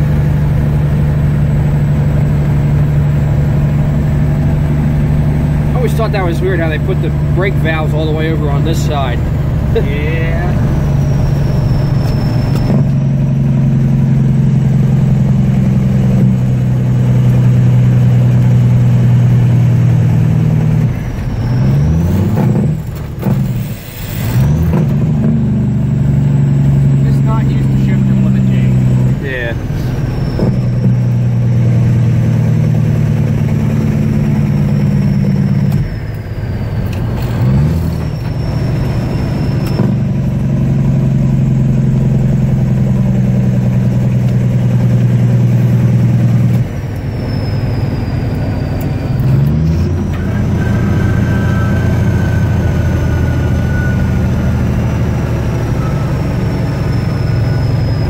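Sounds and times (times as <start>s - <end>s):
diesel engine running under load: 0.0s - 58.0s.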